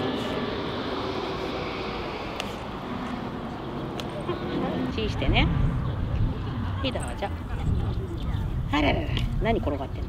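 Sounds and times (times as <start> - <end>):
airplane passing overhead: 0.0 - 10.0.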